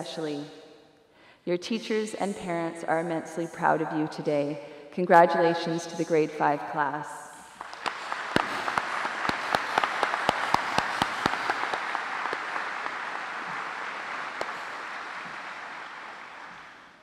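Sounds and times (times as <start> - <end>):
sharp single claps close by: 7.4 - 16.9
audience applauding: 7.4 - 17.0.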